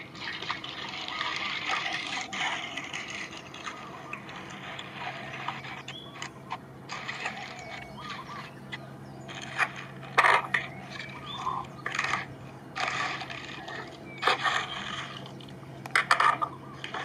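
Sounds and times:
birds chirping: 0.0 - 17.0
faint low hum: 0.0 - 17.0.

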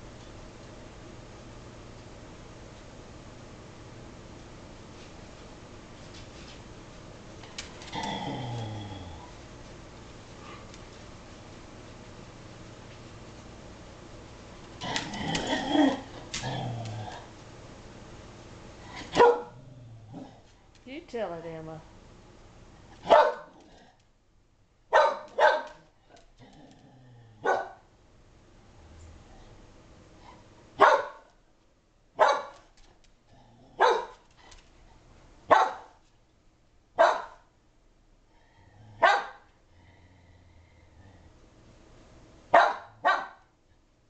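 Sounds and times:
dog barking: 19.1 - 19.6, 23.0 - 23.6, 24.9 - 25.9, 27.4 - 27.8, 30.8 - 31.3, 32.2 - 32.6, 33.8 - 34.2, 35.5 - 36.0, 37.0 - 37.4, 39.0 - 39.4, 42.5 - 43.5.

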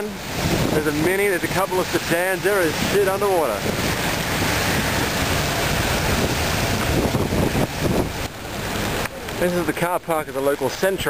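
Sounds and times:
wind buffeting microphone: 0.1 - 9.7.

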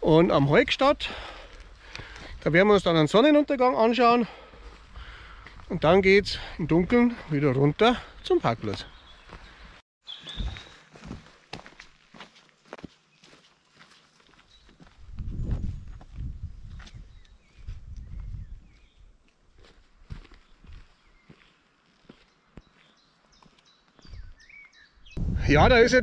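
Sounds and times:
footsteps on stony dirt trail: 0.4 - 3.2, 4.0 - 24.6
low rumble: 25.2 - 26.0.

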